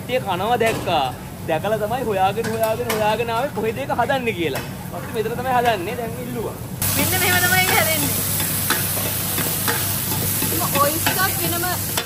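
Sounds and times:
omelette sizzling on griddle: 6.8 - 12.0.

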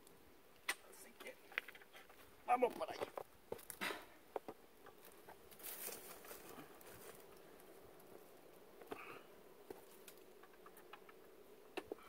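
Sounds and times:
faint steady hum: 0.0 - 12.0
taps and scuffs of climbing: 8.8 - 12.0.

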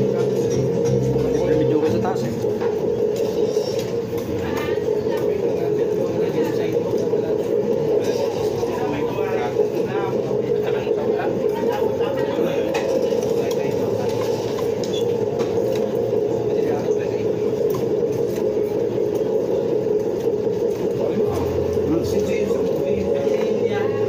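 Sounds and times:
indistinct diners chatter: 0.0 - 24.0.

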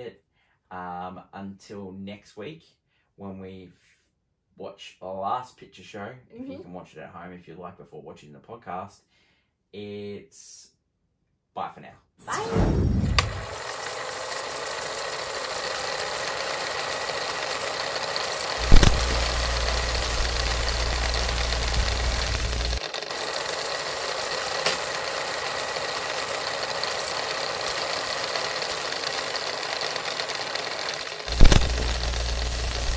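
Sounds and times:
sharp clicks: 16.7 - 23.1, 25.8 - 32.9
low hum: 18.6 - 22.8, 31.3 - 32.9
static hiss: 18.6 - 22.8, 31.3 - 32.9.

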